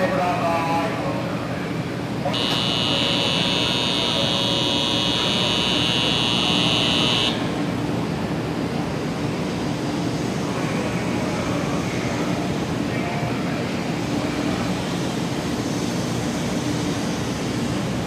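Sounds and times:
low station hum: 0:00.0 - 0:18.0
high electronic warning buzzer: 0:02.3 - 0:07.6.

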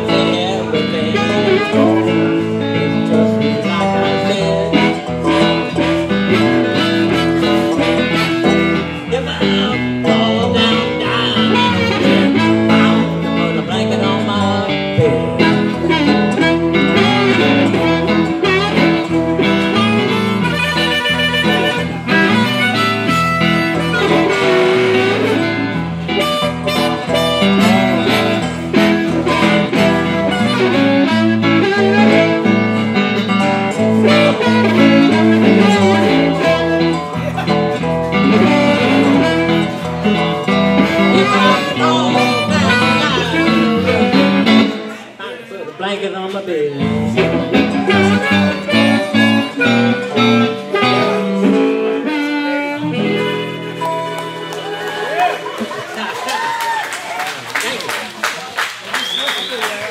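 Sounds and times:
electric guitar and dobro: 0:00.0 - 0:45.2, 0:46.7 - 0:56.3
harmonica bending notes: 0:00.0 - 0:45.2, 0:46.7 - 0:55.8.

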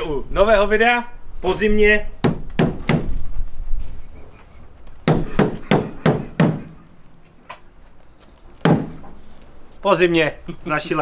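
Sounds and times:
dull thumps on car bonnet: 0:08.6 - 0:09.1.

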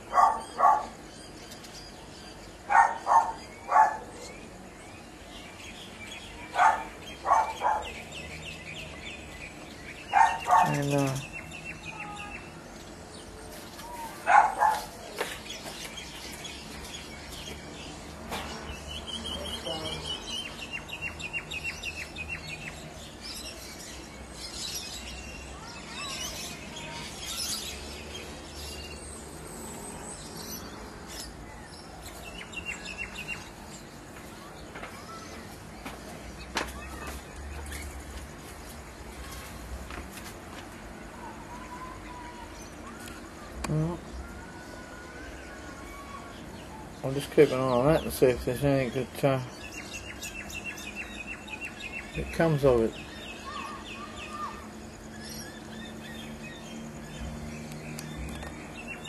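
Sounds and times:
birds calling: 0:00.0 - 0:59.0.

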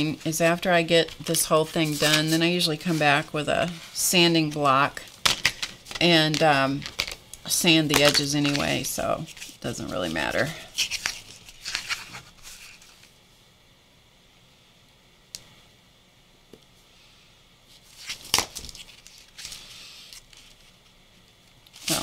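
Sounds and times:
paper rustling: 0:00.0 - 0:07.2, 0:07.9 - 0:13.1, 0:17.8 - 0:20.8.

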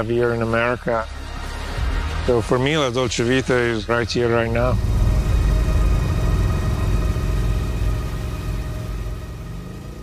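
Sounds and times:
motorcycle engine rumbling: 0:04.2 - 0:10.0.

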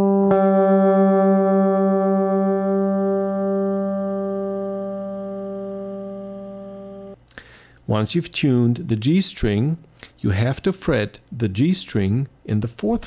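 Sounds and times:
electric guitar strings ringing: 0:00.0 - 0:07.2.

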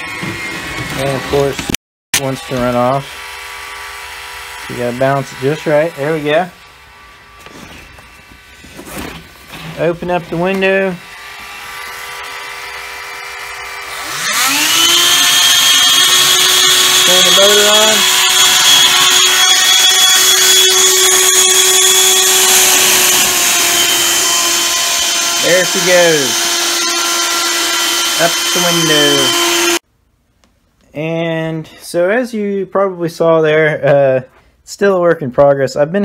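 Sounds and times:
small electric motor whining: 0:11.2 - 0:29.8.

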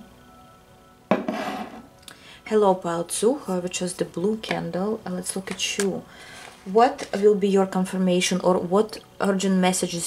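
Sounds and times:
faint background music: 0:00.0 - 0:10.0
ceramic bowl scraping on table: 0:01.1 - 0:01.9.

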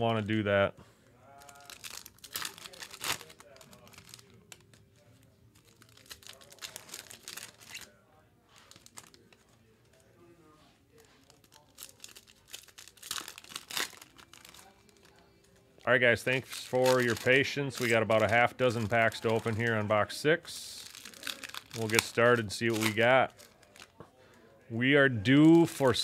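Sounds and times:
foil wrappers crinkling and tearing: 0:01.3 - 0:09.4, 0:10.9 - 0:19.9, 0:20.6 - 0:24.0, 0:25.4 - 0:26.0.

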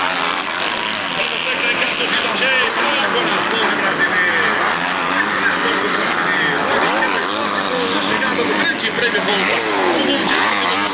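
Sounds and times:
motocross engines revving: 0:00.0 - 0:10.9.

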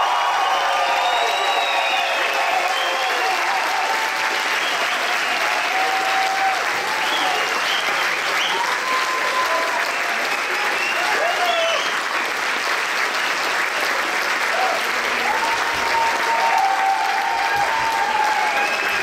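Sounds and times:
shouts and whoops: 0:00.0 - 0:07.6, 0:08.4 - 0:12.0, 0:14.5 - 0:19.0
audience applauding: 0:00.0 - 0:19.0.

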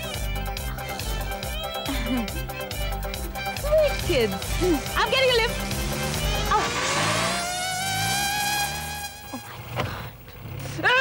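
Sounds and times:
jeep engine revving: 0:02.8 - 0:11.0.

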